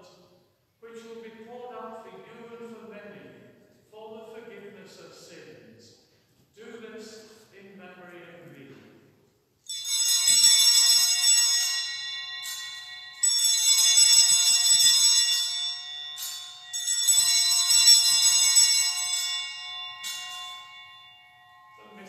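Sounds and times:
altar bells ringing: 9.6s - 22.0s.

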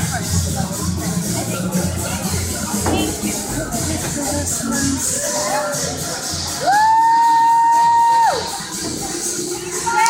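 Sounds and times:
entrance music: 0.6s - 6.7s.

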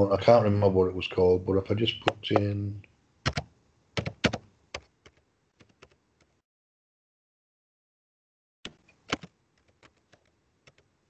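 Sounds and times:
keyboard key clicks: 8.7s - 10.8s.

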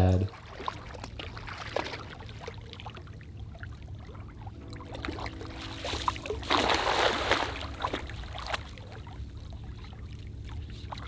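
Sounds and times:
wading in shallow water: 0.0s - 11.0s
cast net splashing on water: 0.3s - 3.0s, 4.9s - 9.2s.

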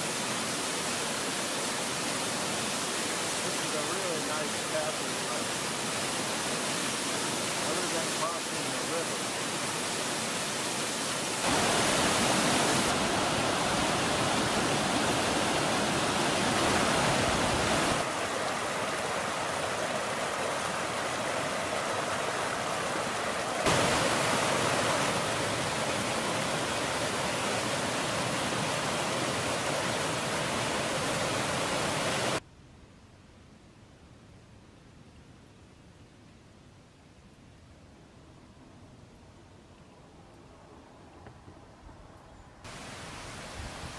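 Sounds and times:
water rushing over rocks: 0.0s - 32.4s, 42.7s - 43.9s.

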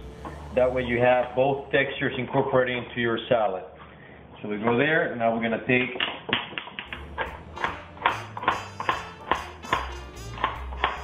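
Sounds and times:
background music with bass line: 0.0s - 1.8s, 6.9s - 11.0s
knife chopping on plastic board: 6.9s - 11.0s.

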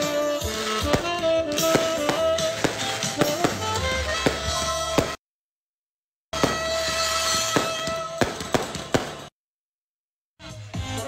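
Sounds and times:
firecrackers banging: 0.0s - 5.2s, 6.4s - 9.3s
party music: 0.0s - 5.2s, 6.4s - 9.2s.

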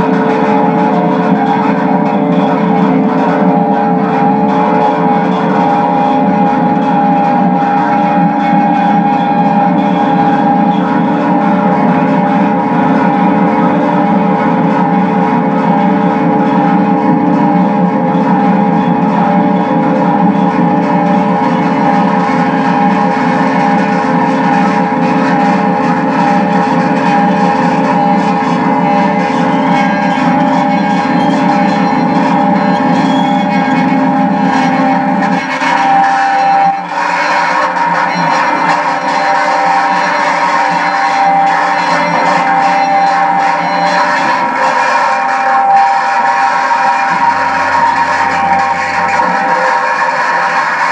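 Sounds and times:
electric guitar noise drone: 0.0s - 50.9s.

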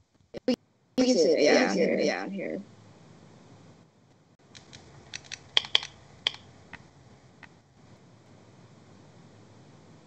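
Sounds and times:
keyboard keys clicking: 4.5s - 6.4s.

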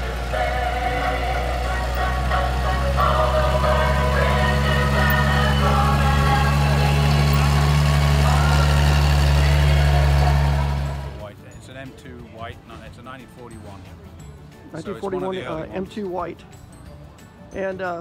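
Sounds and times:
vehicle engine driving past: 0.0s - 11.3s
song playing: 0.0s - 18.0s.

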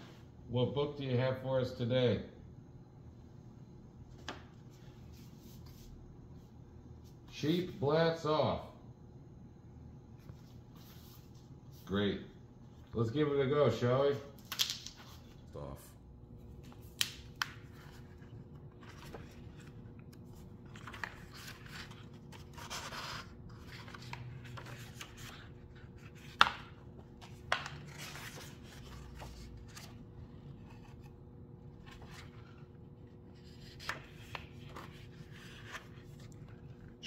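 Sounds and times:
faint steady hum: 0.0s - 37.0s
book pages turning: 16.5s - 37.0s
paper rustling: 17.4s - 37.0s.

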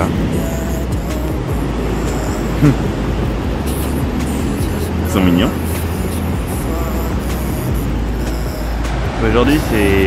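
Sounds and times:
ocean surf on rocky shore: 0.0s - 10.0s.

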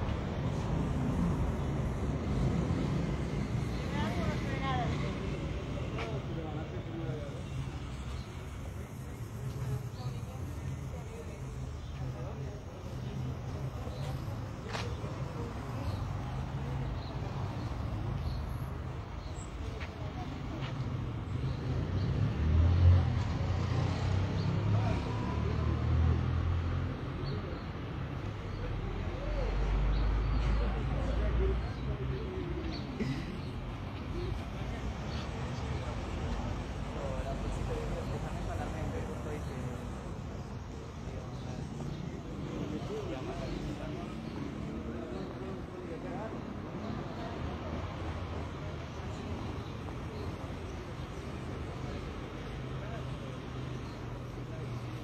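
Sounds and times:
street traffic rumble: 0.0s - 55.0s.

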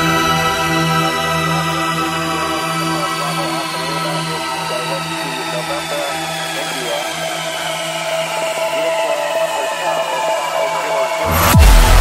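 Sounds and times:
buzzy synth tones: 0.0s - 12.0s
steady low synth note: 11.2s - 12.0s.

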